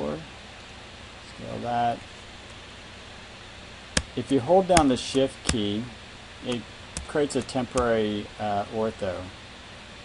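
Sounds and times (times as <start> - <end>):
faint microphone hiss: 0.0 - 10.0
sharp click: 6.5 - 8.0.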